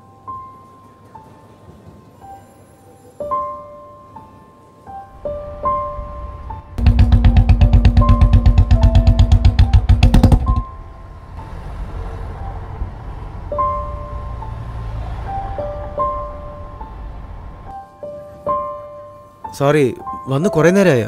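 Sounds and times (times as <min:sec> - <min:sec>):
soft piano music: 0:00.0 - 0:21.0
motorcycle engine running: 0:06.2 - 0:10.9.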